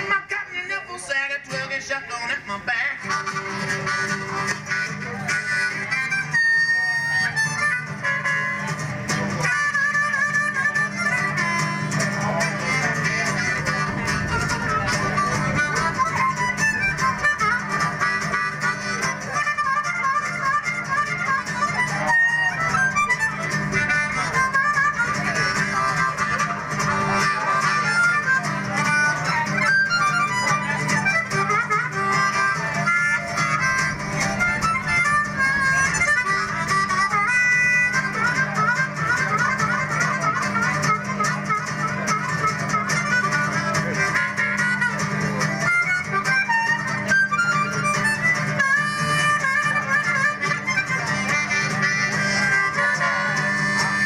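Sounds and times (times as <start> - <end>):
strummed acoustic guitar: 0.0 - 54.0
blues harmonica solo: 2.6 - 54.0.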